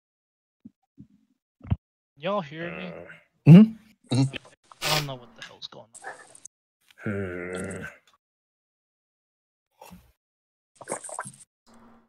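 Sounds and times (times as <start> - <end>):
man speaking: 4.1 - 5.9.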